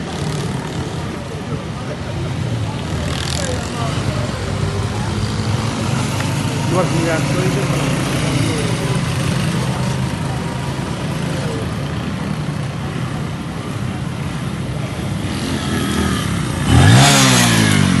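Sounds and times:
motorcycle passing by: 15.1s - 18.0s.

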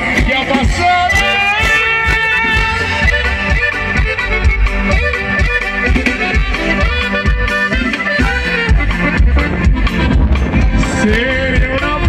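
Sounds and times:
drum kit beat: 0.0s - 12.0s
button accordion: 0.9s - 11.9s
saxophone: 1.1s - 12.0s.

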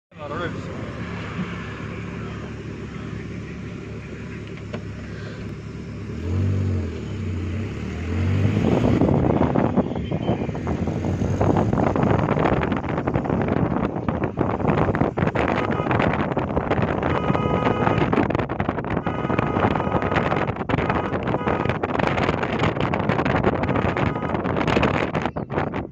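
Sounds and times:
vehicle engine humming: 0.1s - 25.9s
wind buffeting on microphone: 8.3s - 25.9s.

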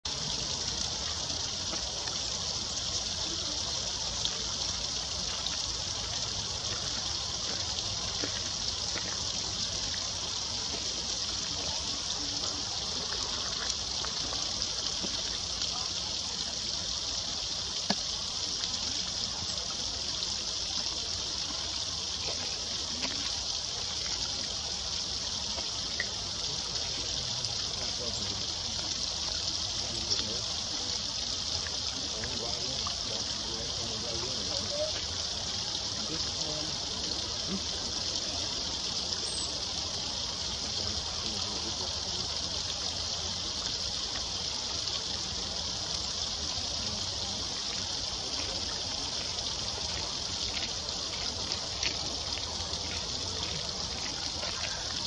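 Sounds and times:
water cascading over rocks: 0.0s - 55.0s.

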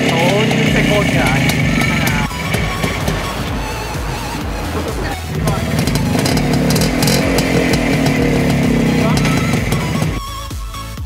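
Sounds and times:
two-stroke motorcycle engine running: 0.0s - 10.2s
background music: 0.0s - 11.0s.

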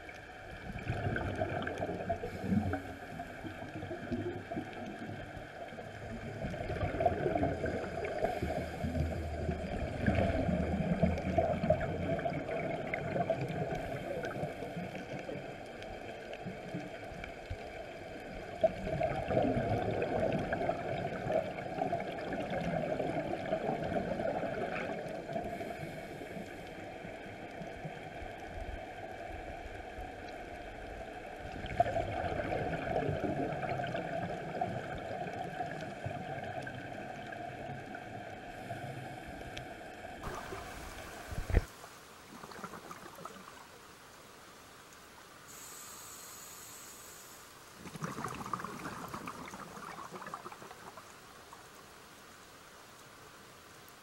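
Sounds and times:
exhaled bubbles gurgling: 0.0s - 39.5s, 40.1s - 43.9s, 47.6s - 51.6s
underwater water noise: 0.0s - 54.0s.

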